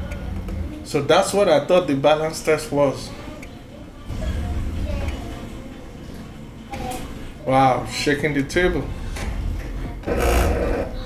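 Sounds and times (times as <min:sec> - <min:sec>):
gimbal motors buzzing: 0:10.0 - 0:11.0.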